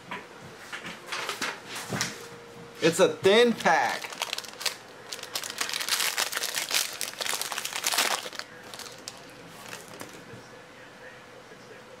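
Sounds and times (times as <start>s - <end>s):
foil wrapper crinkling: 3.4s - 10.2s.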